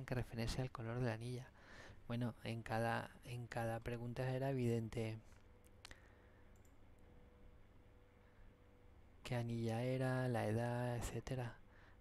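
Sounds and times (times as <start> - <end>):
low room noise: 0.0 - 12.0
computer mouse click: 5.7 - 6.8.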